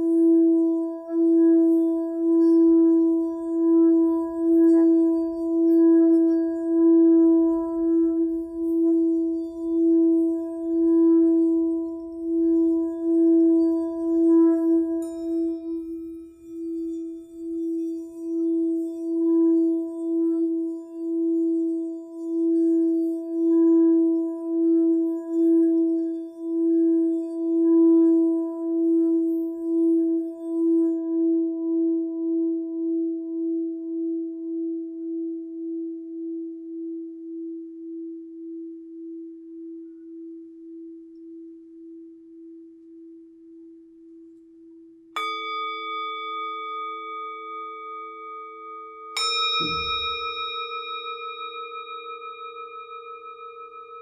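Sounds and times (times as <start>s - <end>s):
singing bowl low ringing tone: 0.0s - 54.0s
higher metal tone struck: 49.2s - 54.0s.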